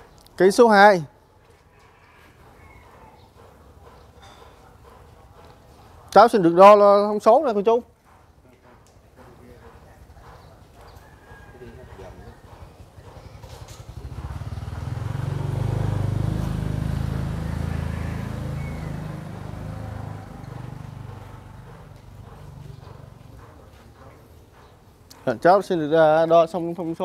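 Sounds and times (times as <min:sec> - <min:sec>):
vehicle engine passing: 0:12.8 - 0:23.8.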